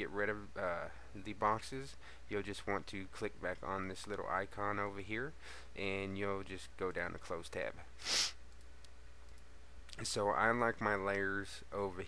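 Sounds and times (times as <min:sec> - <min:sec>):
sharp breath: 0:08.0 - 0:08.4
computer mouse clicks: 0:08.5 - 0:10.0.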